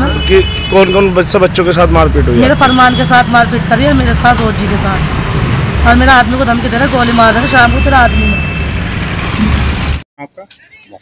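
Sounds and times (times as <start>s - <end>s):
street traffic noise: 0.0s - 11.0s
woman speaking: 2.4s - 5.0s, 5.8s - 8.4s.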